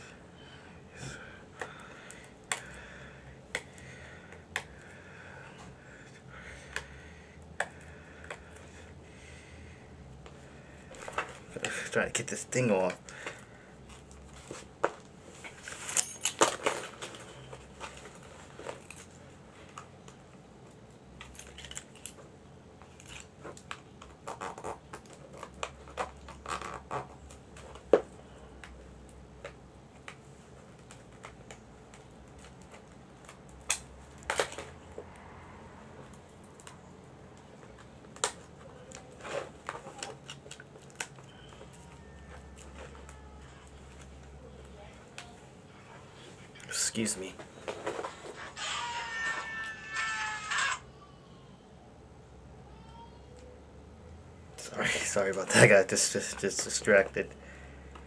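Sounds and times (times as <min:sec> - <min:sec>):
faint low hum: 0:00.0 - 0:58.0
plastic packaging crinkling: 0:37.6 - 0:44.4.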